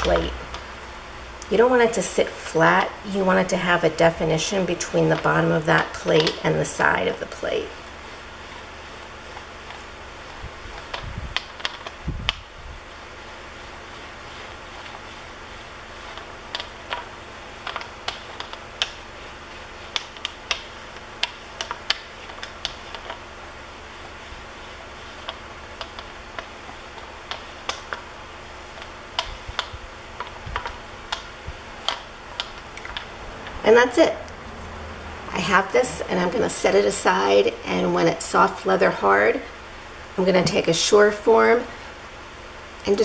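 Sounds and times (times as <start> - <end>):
hand roller clicking on clay: 0.0 - 0.8, 1.4 - 34.0.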